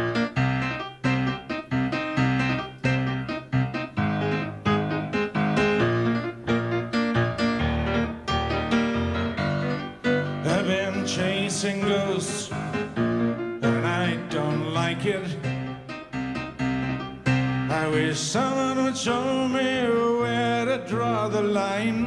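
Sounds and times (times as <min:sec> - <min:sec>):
grand piano chords: 0:00.0 - 0:22.0.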